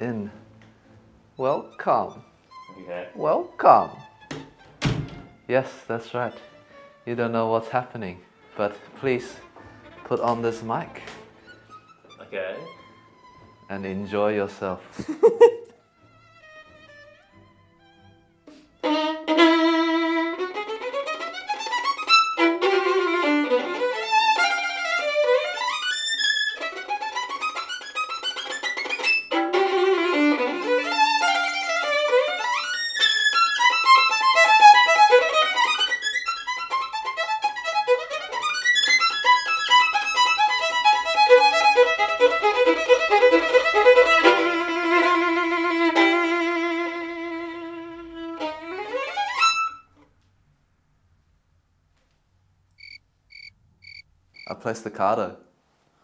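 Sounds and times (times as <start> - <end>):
solo violin playing: 0.0 - 14.8, 15.8 - 50.1.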